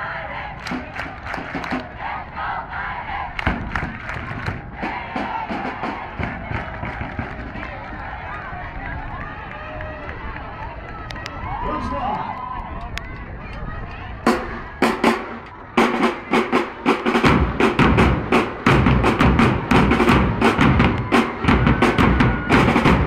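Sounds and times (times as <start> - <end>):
crowd cheering and shouting: 0.0 - 23.0.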